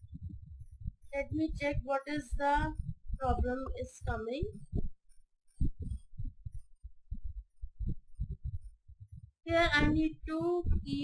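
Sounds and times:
soft muffled low thuds: 0.0s - 11.0s.

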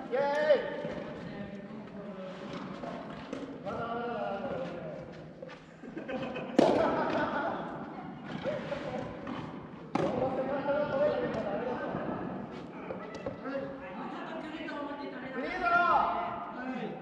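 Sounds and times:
tennis ball hitting racket: 8.2s - 12.0s.

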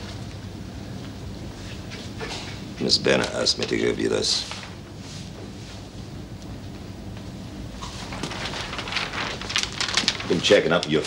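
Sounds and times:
stiff paper rustling: 7.8s - 11.0s.

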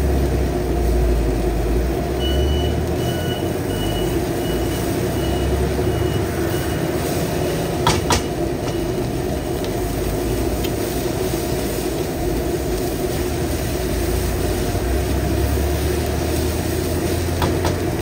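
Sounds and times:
gas burner noise: 0.0s - 18.0s
rice stir-frying in a wok: 0.0s - 18.0s
high electronic beeping: 2.2s - 6.9s.

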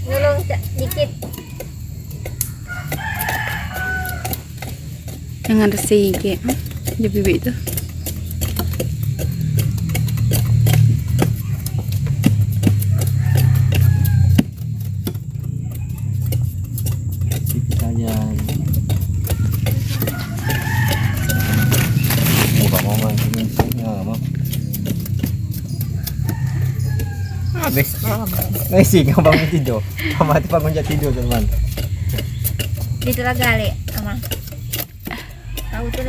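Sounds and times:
animal calls: 0.0s - 36.0s
blade scraping sugarcane rind: 0.0s - 36.0s
steady low hum: 0.0s - 36.0s.

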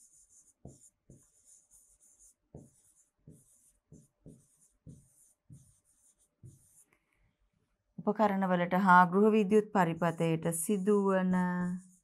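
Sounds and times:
marker pen scratching on whiteboard: 0.0s - 7.0s, 10.8s - 12.0s.

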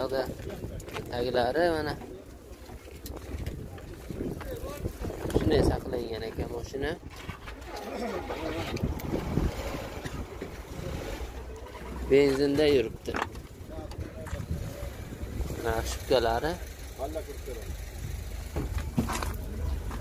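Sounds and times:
low outdoor rumble: 0.0s - 20.0s
people talking indistinctly: 0.0s - 20.0s.

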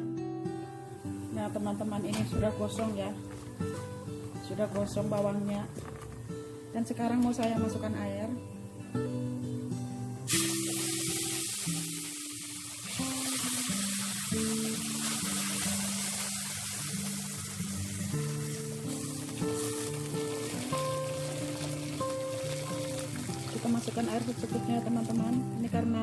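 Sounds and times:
oil sizzling and hissing: 10.2s - 25.8s
water pouring: 10.3s - 25.8s.

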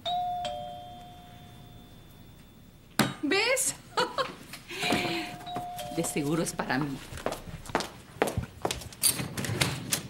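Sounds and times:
two-note doorbell chime: 0.0s - 2.7s, 5.2s - 6.7s.

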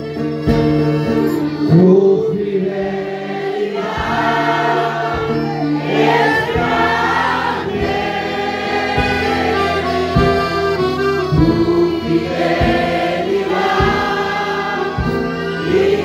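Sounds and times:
sustained instrumental chords: 0.0s - 16.0s
voices singing a hymn: 0.1s - 16.0s.

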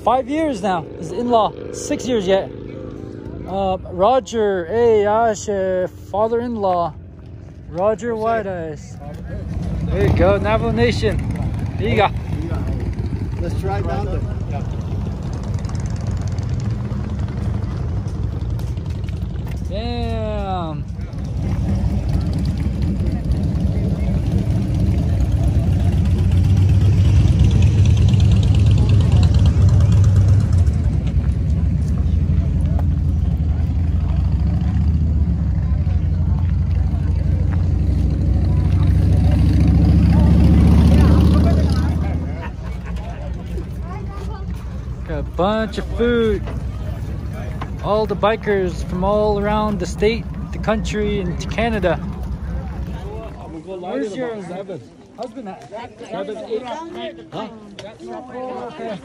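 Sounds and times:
motorcycle engines rumbling: 0.0s - 59.0s
people's voices: 0.0s - 59.0s.

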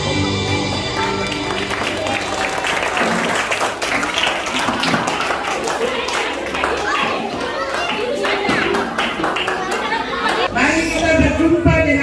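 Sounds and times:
many voices chattering: 0.0s - 12.0s.

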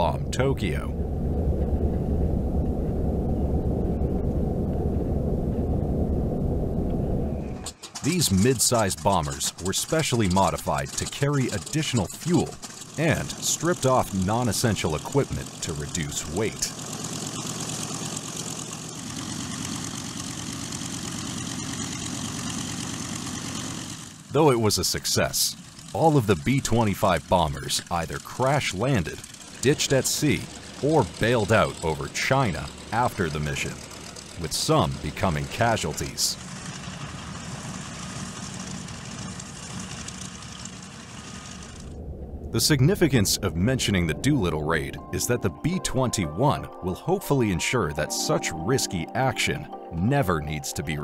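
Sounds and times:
piston aircraft engines idling: 0.0s - 51.0s.

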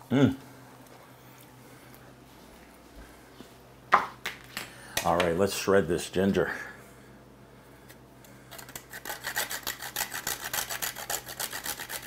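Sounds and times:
faint hum: 0.0s - 12.0s.

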